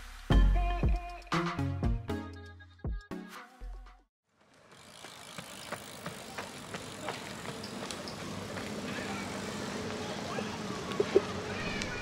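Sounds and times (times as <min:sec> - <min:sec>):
running footsteps on pavement: 0:04.4 - 0:12.0.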